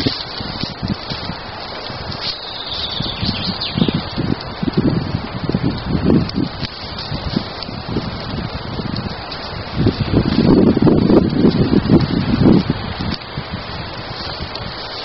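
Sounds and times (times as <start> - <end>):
small fire crackling: 0.0 - 15.0
wind buffeting microphone: 0.0 - 15.0.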